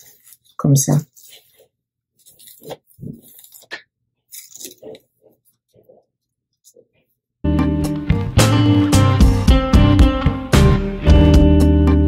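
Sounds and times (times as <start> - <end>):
comb scraping through hair: 0.0 - 6.0.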